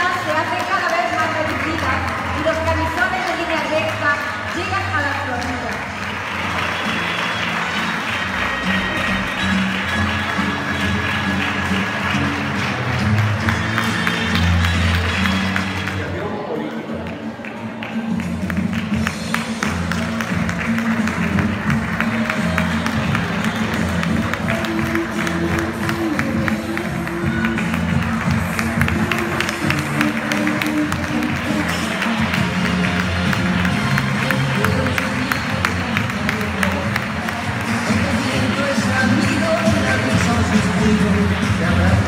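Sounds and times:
audience clapping along: 0.0 - 42.0
music over loudspeakers: 0.0 - 42.0.

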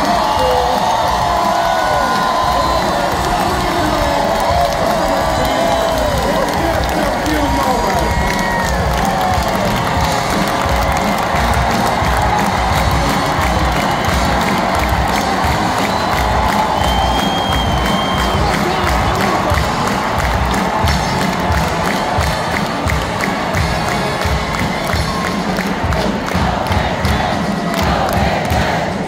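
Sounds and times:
shouts and whoops: 0.0 - 22.4
crowd cheering and clapping: 0.0 - 29.0.

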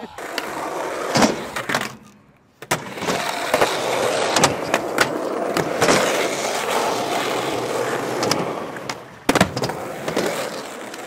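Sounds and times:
skateboard clack: 0.0 - 11.0
skateboard wheels rolling on concrete: 0.0 - 11.0.

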